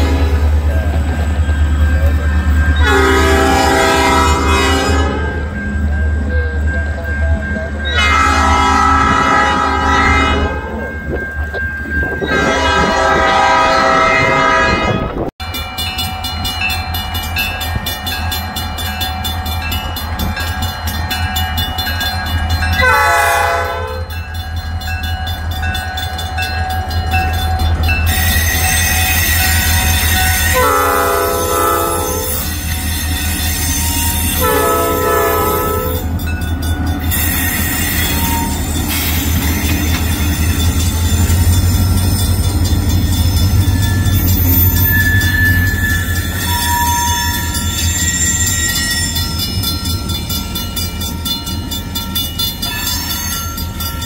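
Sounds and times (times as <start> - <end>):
locomotive air horn blasts: 0.0 - 0.4, 2.8 - 5.5, 8.0 - 10.7, 12.2 - 15.3, 22.8 - 24.2, 30.4 - 32.4, 34.4 - 36.0
locomotive engine rumble: 0.0 - 54.0.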